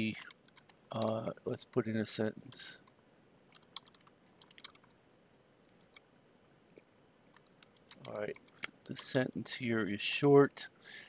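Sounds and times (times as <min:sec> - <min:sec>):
keyboard keystrokes: 0:03.5 - 0:04.9.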